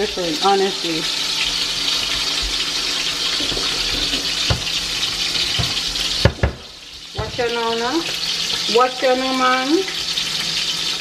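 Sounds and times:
chicken sizzling in hot oil: 0:00.0 - 0:11.0.

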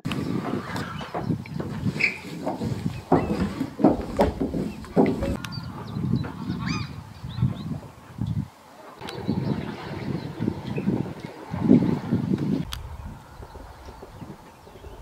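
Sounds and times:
birds calling: 0:00.0 - 0:15.0
outdoor background noise: 0:00.0 - 0:15.0.

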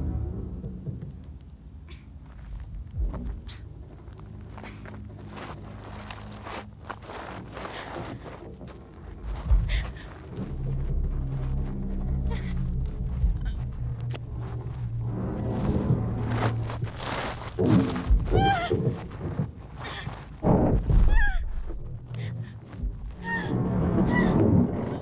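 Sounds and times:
ominous low drone: 0:00.0 - 0:25.0
heavy thump: 0:16.2 - 0:19.6.

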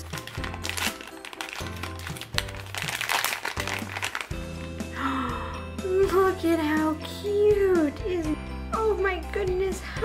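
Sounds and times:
plastic packet crinkling and tearing: 0:00.0 - 0:04.8.

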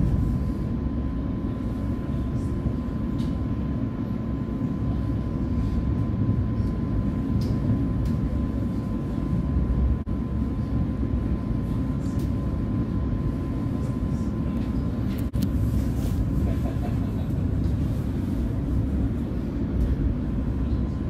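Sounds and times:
thin steady whine: 0:00.0 - 0:21.0
train wheels rumbling on rail: 0:00.0 - 0:21.0.

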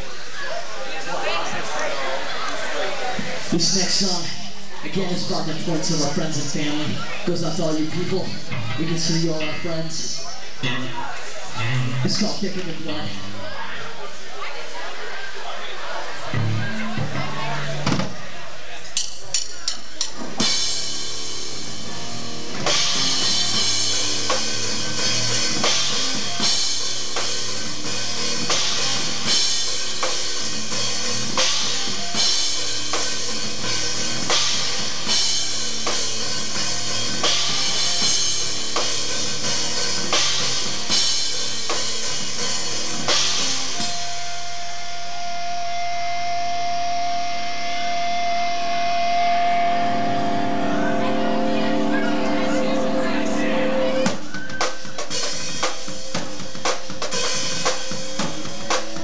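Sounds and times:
live rock band playing: 0:01.2 - 0:14.2, 0:16.0 - 0:59.0
drum kit beat: 0:18.9 - 0:59.0.

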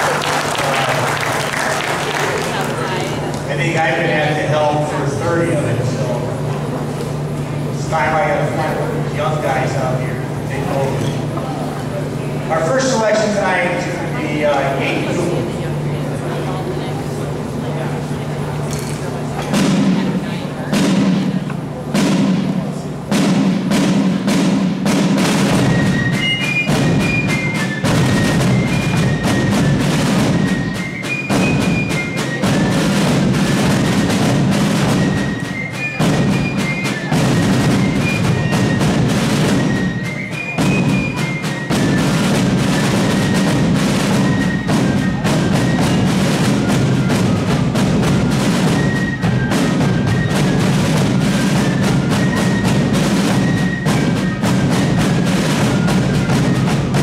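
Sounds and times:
snare drum rudiments: 0:00.0 - 0:15.5, 0:18.8 - 0:57.0
fifes playing high melody: 0:24.8 - 0:57.0.

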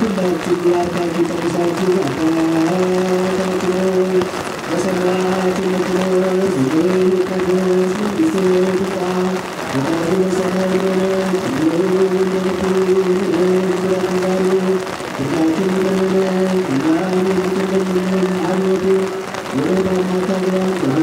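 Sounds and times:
liturgical chanting: 0:00.0 - 0:21.0
rain falling: 0:00.0 - 0:21.0.

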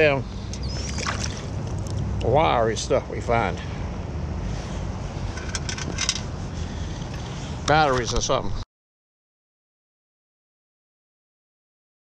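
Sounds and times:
wind and water rumble: 0:00.0 - 0:08.6.

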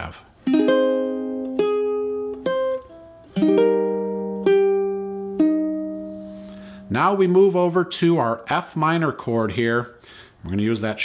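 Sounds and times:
ukulele notes and chords: 0:00.4 - 0:07.8.

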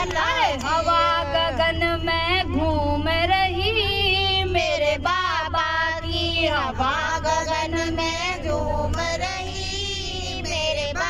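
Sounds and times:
steady low hum: 0:00.0 - 0:11.0
woman singing into a microphone: 0:00.0 - 0:11.0.

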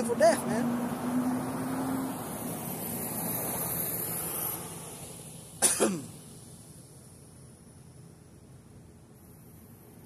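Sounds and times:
street traffic noise: 0:00.0 - 0:10.0
man coughing: 0:05.6 - 0:06.1.

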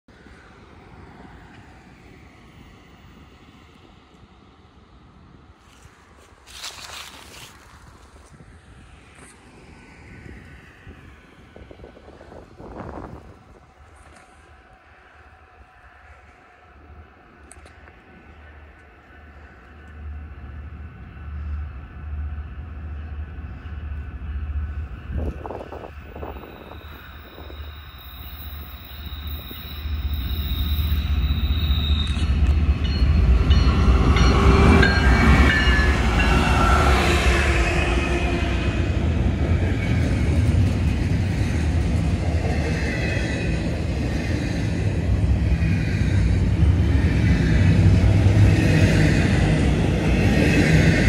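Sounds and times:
distant freight train rumble: 0:00.1 - 0:51.0.

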